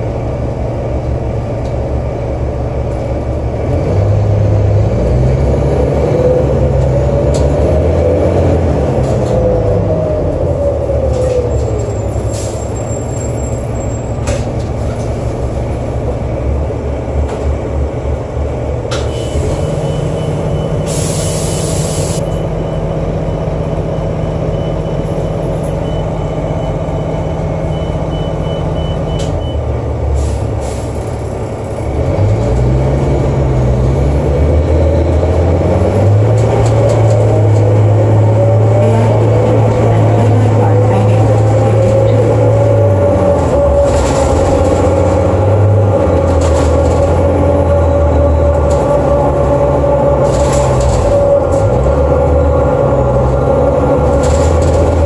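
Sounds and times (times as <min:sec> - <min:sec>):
bus engine idling and accelerating: 0:00.0 - 0:55.0
engine whine: 0:00.0 - 0:55.0.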